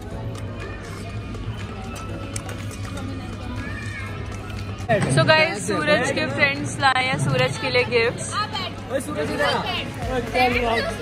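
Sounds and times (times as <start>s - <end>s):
indistinct talk: 0.0s - 11.0s.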